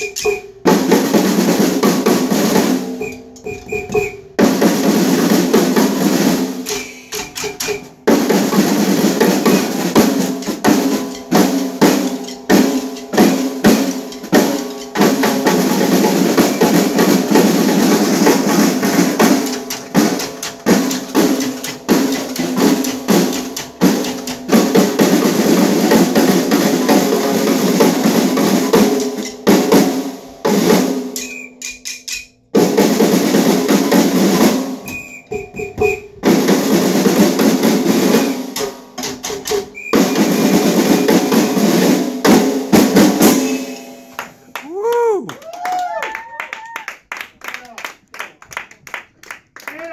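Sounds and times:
snare drums and drum kit: 0.0 - 44.5.

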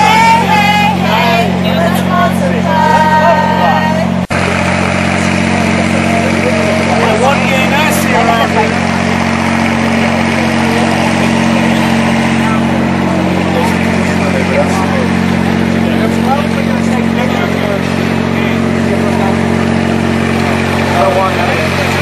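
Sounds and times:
floodlight engine drone: 0.0 - 22.0
people talking: 0.0 - 22.0.

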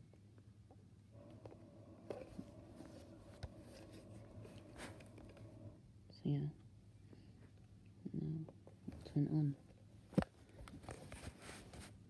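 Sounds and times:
low hum: 1.2 - 5.8.

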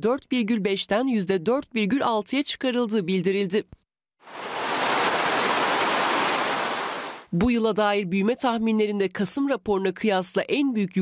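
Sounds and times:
steady rushing noise: 4.3 - 7.2.

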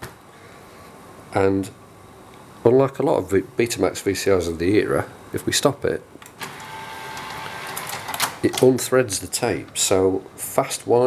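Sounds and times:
small motor whirring: 6.5 - 8.2.

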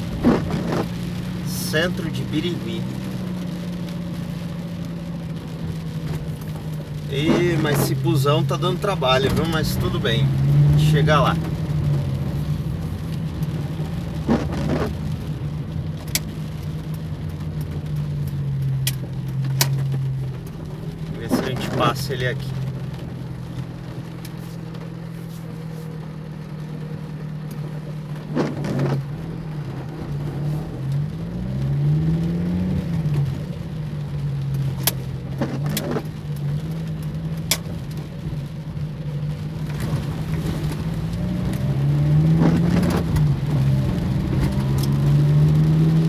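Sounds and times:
car engine humming: 0.0 - 46.0.

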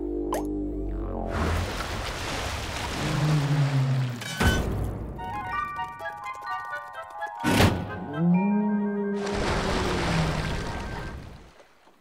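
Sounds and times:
low held rising tone: 0.0 - 1.3.

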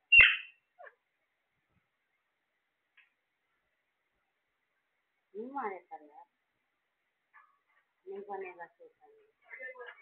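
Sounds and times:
parrot falling chirp: 0.0 - 1.0
parrot squawk: 0.1 - 1.0.

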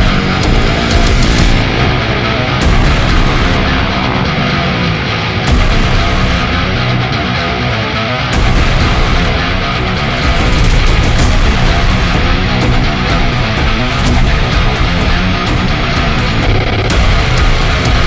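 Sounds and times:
heavy rock music: 0.0 - 18.0.

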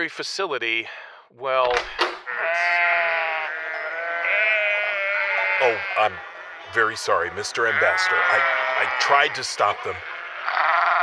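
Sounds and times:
goat bleating: 2.3 - 11.0.

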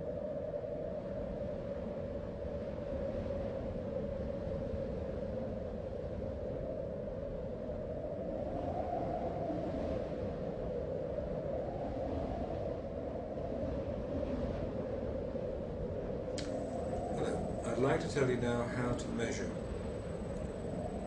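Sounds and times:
faint hum: 0.0 - 21.0
low rumbling background noise: 11.8 - 21.0.

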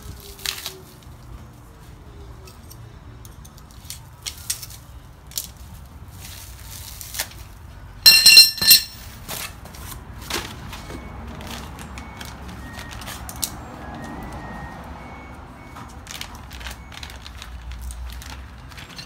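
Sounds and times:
plastic bags and cardboard rustling: 4.3 - 7.8, 15.8 - 19.0.

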